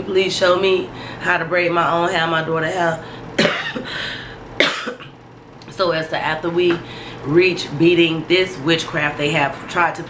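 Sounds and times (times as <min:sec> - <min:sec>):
woman coughing: 0:03.4 - 0:04.0, 0:04.6 - 0:05.2.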